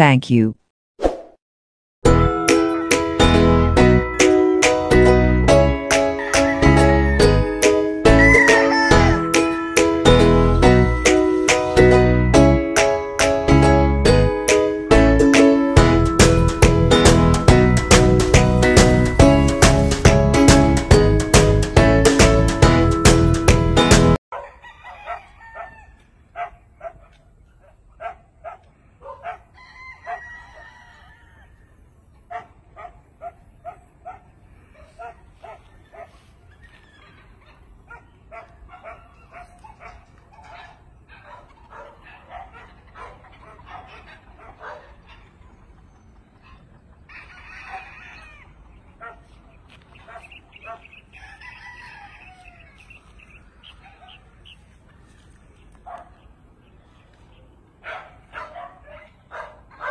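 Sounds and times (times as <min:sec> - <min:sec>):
rooster crowing: 0:06.1 - 0:07.4, 0:08.0 - 0:09.9, 0:24.4 - 0:26.1, 0:29.5 - 0:31.8, 0:47.1 - 0:48.6, 0:51.1 - 0:53.0
chickens clucking: 0:39.2 - 0:56.0.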